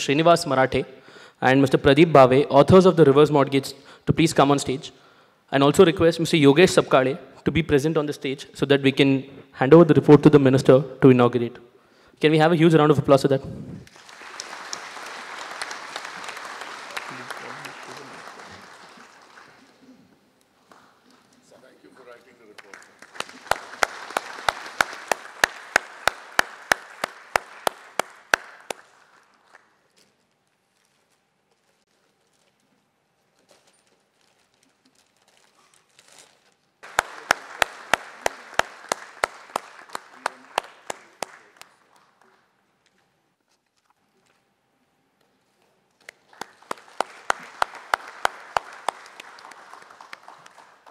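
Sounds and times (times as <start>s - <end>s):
regular sharp claps: 13.8s - 19.9s, 22.3s - 29.7s, 36.8s - 42.5s, 46.0s - 50.9s
audience applause: 13.8s - 20.0s, 22.4s - 29.7s, 36.8s - 42.4s, 46.1s - 50.9s.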